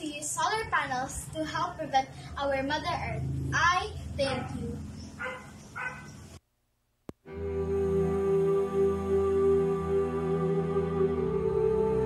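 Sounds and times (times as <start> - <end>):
dog barking: 4.3 - 6.2.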